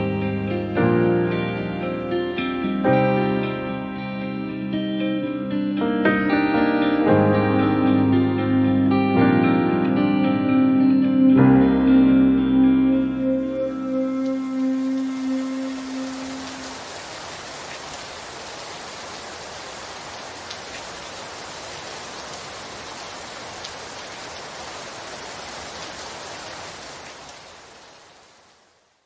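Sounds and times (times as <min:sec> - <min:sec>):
held song notes: 0:00.0 - 0:16.8
steady hiss: 0:13.6 - 0:20.1.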